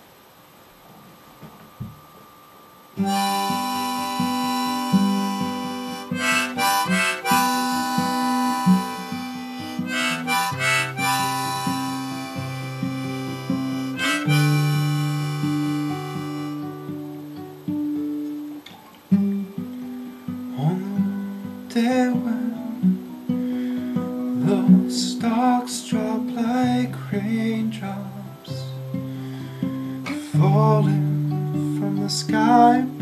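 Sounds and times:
acoustic guitar playing: 0:00.8 - 0:33.0
harmonica long notes: 0:03.0 - 0:17.3.

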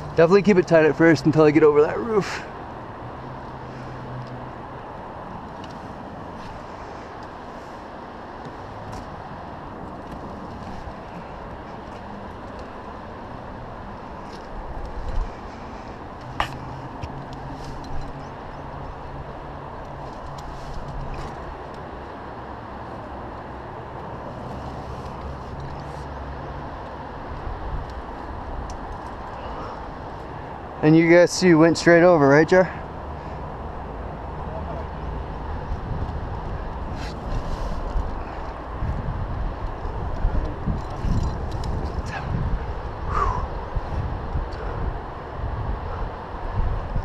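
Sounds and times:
rushing outdoor noise: 0:00.0 - 0:47.0.

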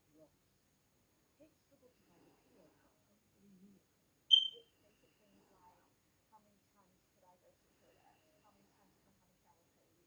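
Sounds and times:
short high electronic beep: 0:04.3 - 0:04.6.

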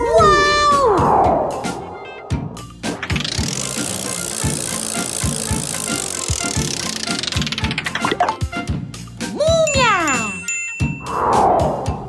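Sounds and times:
background music with steady beat: 0:00.0 - 0:11.0.

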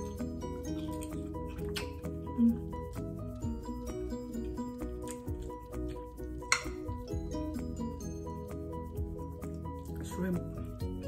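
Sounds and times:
melodic background music: 0:00.0 - 0:11.0
metal fork clinking glass bowl: 0:06.5 - 0:06.9.

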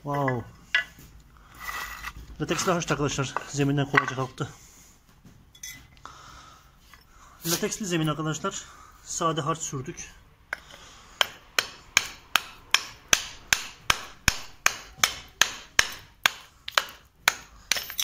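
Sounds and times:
hammer knocking on mortar: 0:11.2 - 0:18.0.

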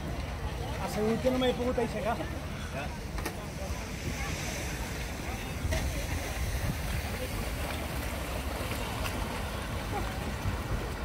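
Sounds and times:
people talking: 0:00.0 - 0:11.0
wind rumble on microphone: 0:03.5 - 0:11.0.

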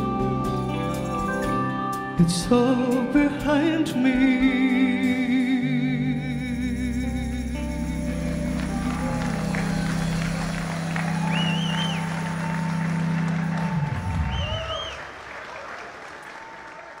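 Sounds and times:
audience applause: 0:08.4 - 0:17.0
warbling whistles: 0:09.5 - 0:12.8, 0:14.2 - 0:15.1.

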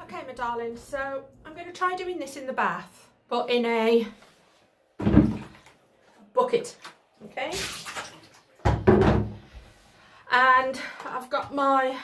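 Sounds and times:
plastic bucket thudding in bathtub: 0:05.0 - 0:05.7, 0:07.6 - 0:09.5.

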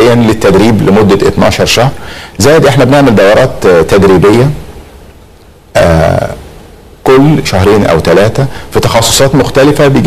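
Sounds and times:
man speaking: 0:00.0 - 0:04.7, 0:05.7 - 0:10.0
man's drawn-out hesitation sound: 0:05.6 - 0:10.0.

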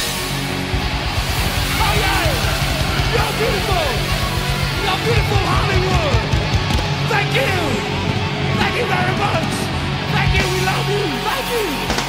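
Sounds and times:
electric guitar: 0:00.0 - 0:12.0
loud rock music: 0:00.0 - 0:12.0.

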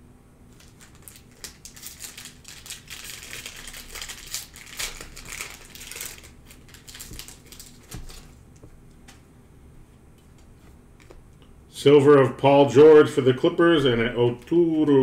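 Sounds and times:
foil wrapper crinkling: 0:00.5 - 0:08.4.

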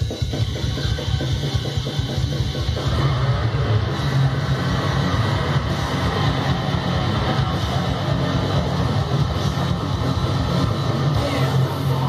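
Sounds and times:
distorted electric guitar riff: 0:00.0 - 0:12.0.

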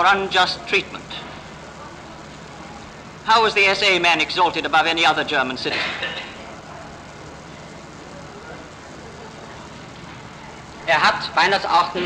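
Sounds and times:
recording hiss: 0:00.0 - 0:12.0
man speaking: 0:10.9 - 0:12.0.

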